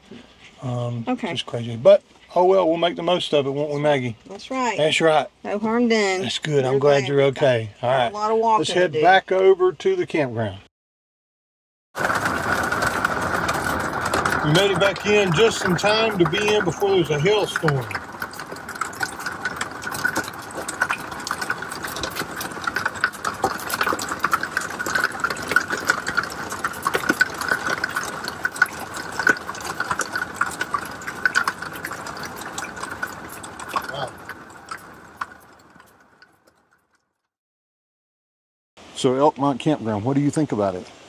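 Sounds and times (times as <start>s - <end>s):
steady rain hiss: 0.0s - 10.6s, 12.0s - 35.9s, 38.8s - 41.0s
hail pelting a vehicle: 12.0s - 36.6s.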